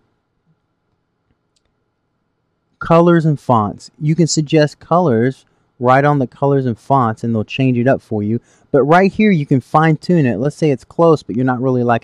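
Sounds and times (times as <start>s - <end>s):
man speaking: 2.8s - 12.0s.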